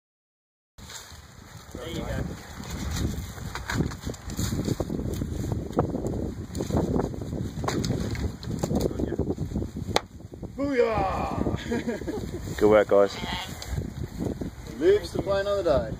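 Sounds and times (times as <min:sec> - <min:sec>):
sticks and leaves crackling: 0:00.8 - 0:15.6
wind rumbling on microphone: 0:00.8 - 0:15.9.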